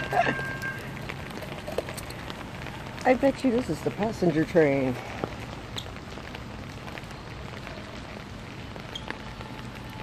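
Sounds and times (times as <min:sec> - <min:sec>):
rain on wet pavement: 0:00.0 - 0:10.0.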